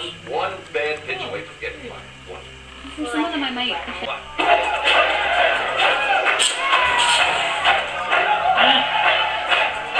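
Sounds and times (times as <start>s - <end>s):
film soundtrack from television: 0.0s - 9.9s
quiet music: 0.0s - 9.9s.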